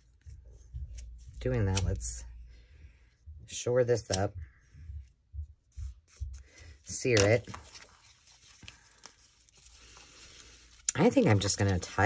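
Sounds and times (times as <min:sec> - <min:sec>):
satin ribbon rustling: 0:04.0 - 0:12.0.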